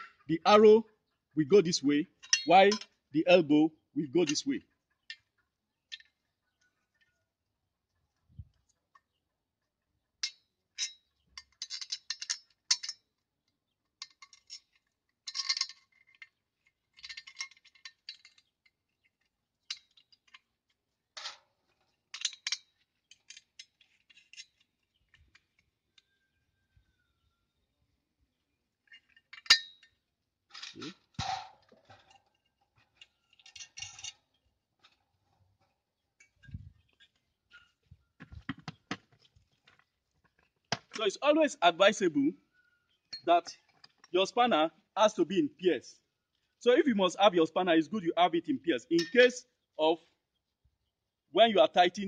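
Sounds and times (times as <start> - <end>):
small steel parts clinking: 2.2 - 3.0, 10.2 - 26.1, 28.8 - 35.0.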